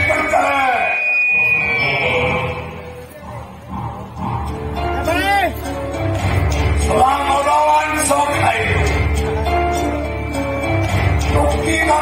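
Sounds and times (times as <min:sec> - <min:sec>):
high-pitched electronic tone: 0:00.0 - 0:03.1.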